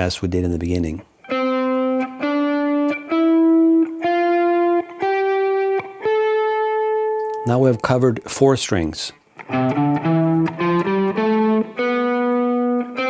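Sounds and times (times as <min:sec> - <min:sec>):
electric guitar single picked notes: 0:01.2 - 0:08.2, 0:09.2 - 0:13.0.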